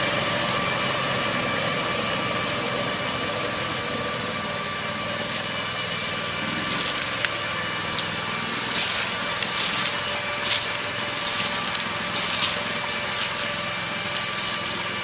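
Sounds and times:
tracked vehicle engine running: 0.0s - 15.0s
branches snapping: 6.6s - 14.8s.

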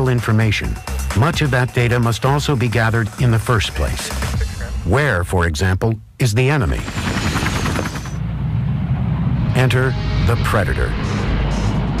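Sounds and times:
aircraft engine running: 6.6s - 12.0s.

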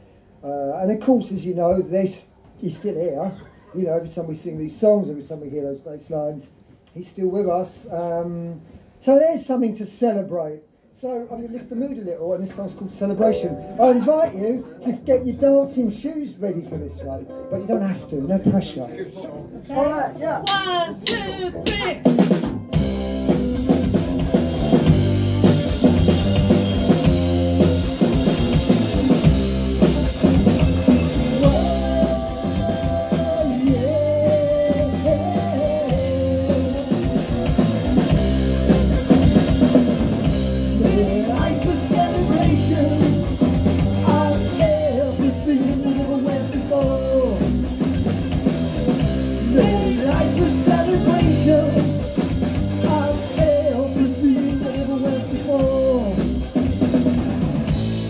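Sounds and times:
drum kit steady beat: 20.4s - 58.0s
bass guitar: 20.7s - 58.0s
distorted electric guitar: 21.5s - 58.0s.

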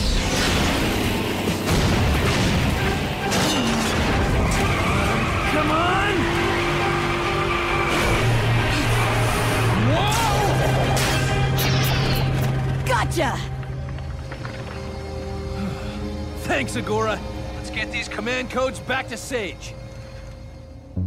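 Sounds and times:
cartoon action music: 0.0s - 13.5s
engines running: 0.0s - 19.3s
tires skidding: 4.1s - 9.9s.

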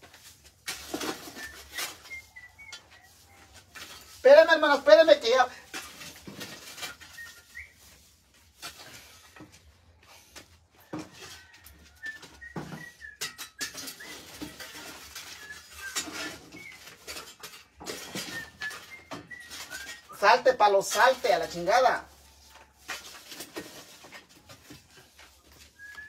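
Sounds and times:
firewood knocking and scraping: 0.0s - 26.0s.

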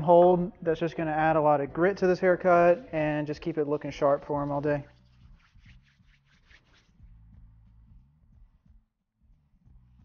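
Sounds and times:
hands rubbing together: 3.5s - 7.0s.

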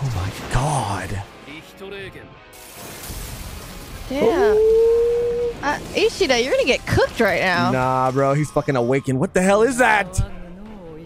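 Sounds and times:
dense noisy crackling: 2.5s - 8.4s.

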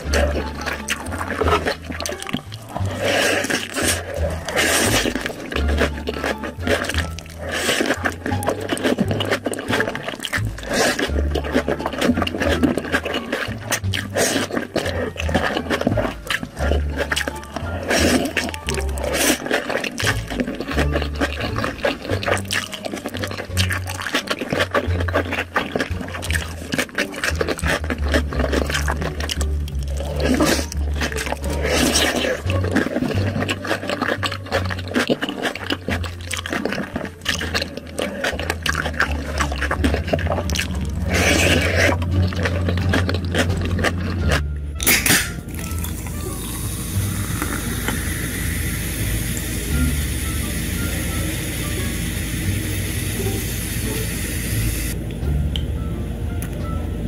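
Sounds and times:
chewing and slurping noodles: 0.0s - 55.0s.

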